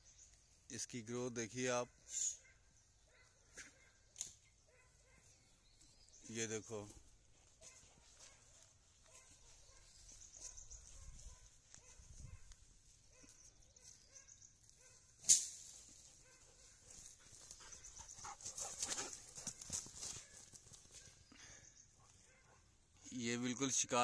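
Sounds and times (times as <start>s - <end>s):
dog running through grass: 15.8s - 21.2s.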